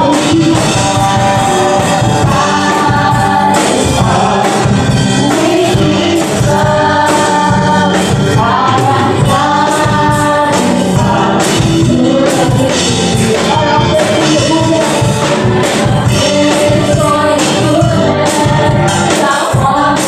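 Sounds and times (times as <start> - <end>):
bass: 0.0 - 20.0
drums: 0.0 - 20.0
electric guitar: 0.0 - 20.0
keyboard: 0.0 - 20.0
singers holding long notes: 0.0 - 20.0.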